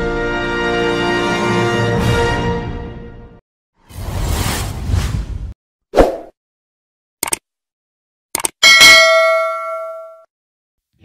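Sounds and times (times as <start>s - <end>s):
bell chime: 8.6s - 10.3s.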